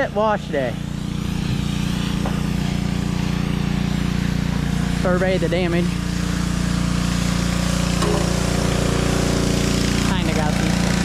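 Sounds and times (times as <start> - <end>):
pressure washer engine running: 0.0 - 11.0.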